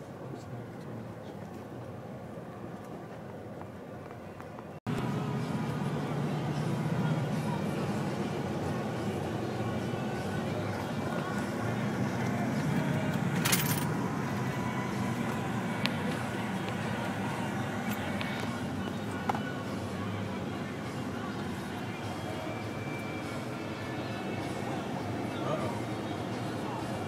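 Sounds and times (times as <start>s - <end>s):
truck engine rumble: 4.8s - 27.0s
loose things rattling in cab: 13.0s - 14.0s.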